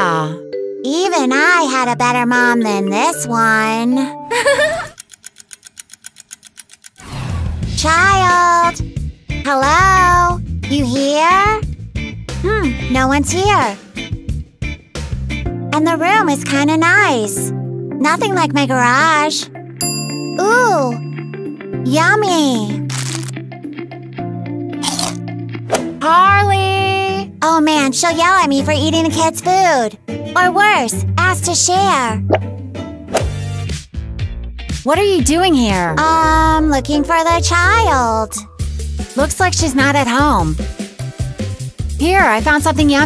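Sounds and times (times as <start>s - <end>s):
background music: 0.0s - 5.4s, 6.4s - 43.0s
rapid clock ticking: 4.9s - 7.0s
plastic wrapper crinkling: 22.9s - 23.3s
biting into cookie: 22.9s - 23.4s, 24.8s - 25.2s.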